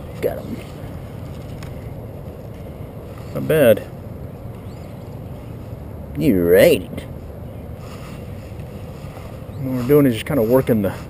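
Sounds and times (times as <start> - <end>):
low background rumble: 0.0 - 11.0
faint high chirp: 4.5 - 5.2.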